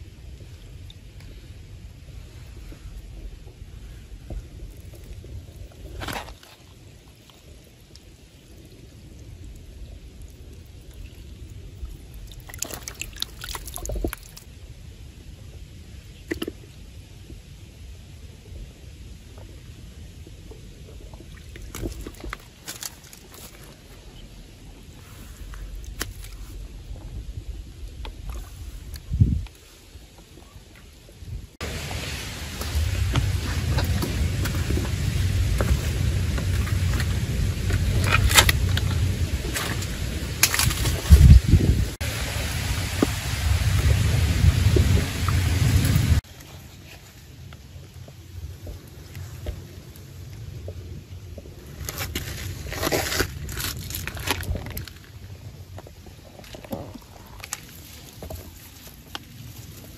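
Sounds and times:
rushing noise with deep rumble: 0:00.0 - 0:06.6, 0:07.3 - 0:46.3.

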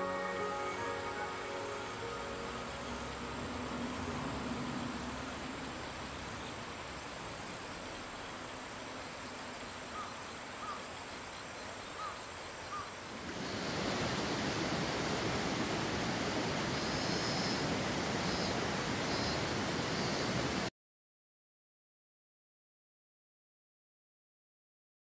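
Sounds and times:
insects singing high-pitched: 0:00.0 - 0:06.5
soft outdoor hiss: 0:00.0 - 0:20.7.

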